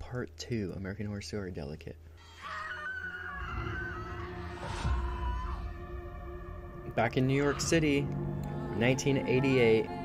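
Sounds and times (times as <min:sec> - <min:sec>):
woman screaming: 0:02.2 - 0:06.0
low rumbling drone: 0:03.4 - 0:10.0.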